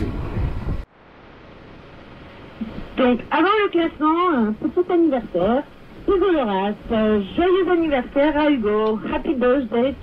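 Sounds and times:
boat engine rumble: 0.0s - 10.0s
shortwave radio hiss: 0.0s - 10.0s.

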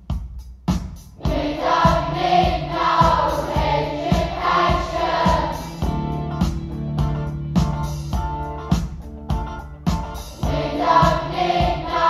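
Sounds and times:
voices singing held chords: 1.2s - 6.1s, 10.4s - 12.0s
plucked notes with deep bass: 1.3s - 12.0s.

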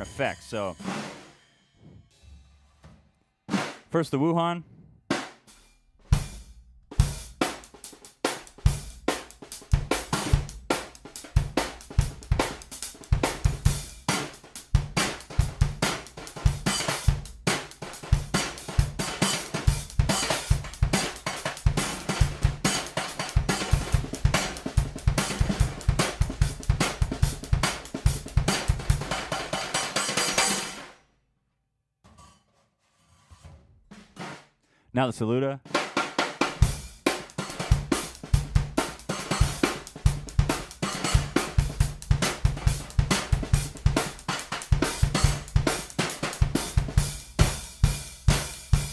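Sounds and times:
drum kit playing: 0.0s - 1.4s, 3.5s - 4.0s, 5.1s - 31.0s, 35.6s - 48.9s.

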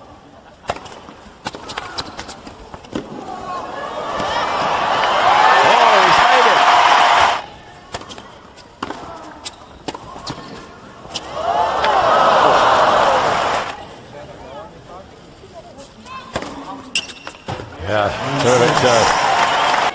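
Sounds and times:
crowd cheering and shouting: 3.2s - 7.6s, 11.2s - 13.9s, 17.8s - 19.9s.

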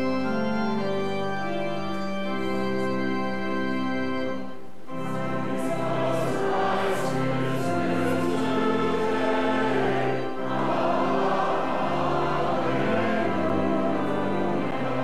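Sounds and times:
organ sustained chords: 0.0s - 15.0s
choir singing a hymn: 4.9s - 15.0s.

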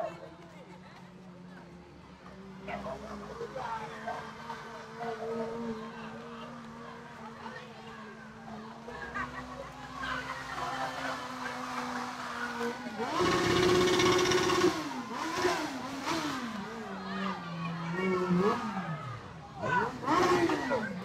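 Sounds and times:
motorcycle engine revving: 8.2s - 21.0s.

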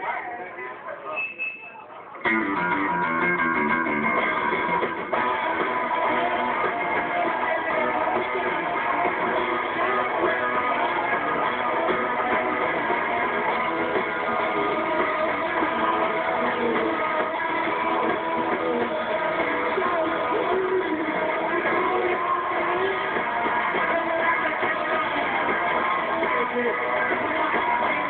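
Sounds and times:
bass guitar: 2.2s - 28.0s
electric guitar riff: 2.2s - 28.0s
live rock band playing loudly: 2.2s - 28.0s.

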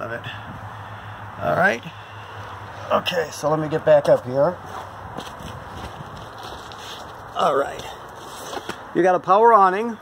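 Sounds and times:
steady outdoor noise: 0.0s - 10.0s
faint footsteps: 3.9s - 8.9s
handling rustle: 4.1s - 8.9s.

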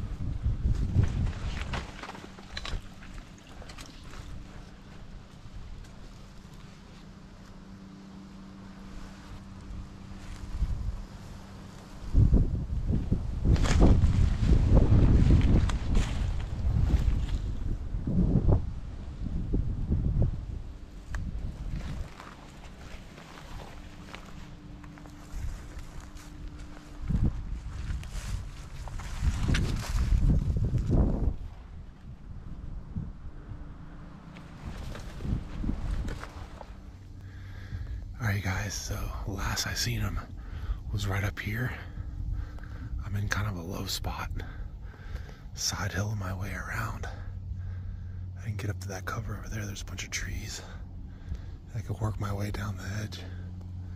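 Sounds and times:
wind buffeting microphone: 0.0s - 5.8s, 9.7s - 45.6s
footsteps through dry grass: 0.1s - 17.8s, 21.0s - 31.6s, 34.2s - 40.5s.

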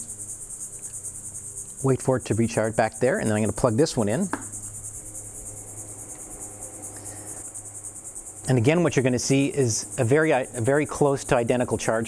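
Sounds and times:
crickets trilling: 0.0s - 12.0s.

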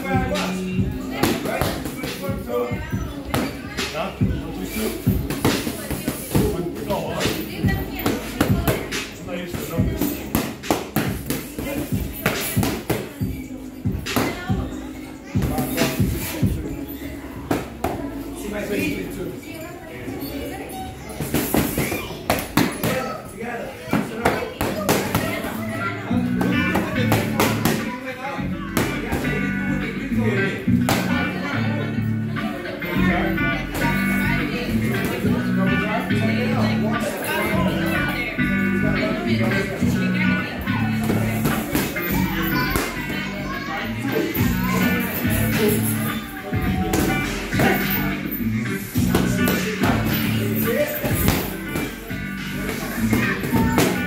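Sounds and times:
background music: 0.0s - 19.5s, 24.5s - 54.0s.

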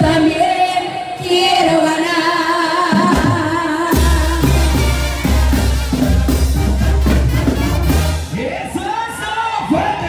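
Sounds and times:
loud banda music: 3.7s - 10.0s.

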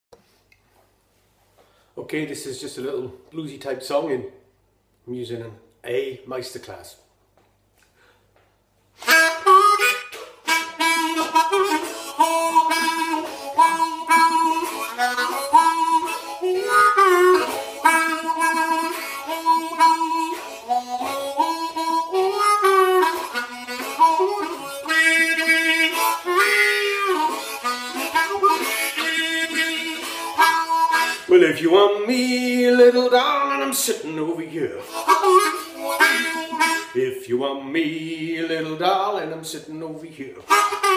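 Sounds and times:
harmonica bluesy riff: 9.0s - 38.9s, 40.4s - 40.9s.

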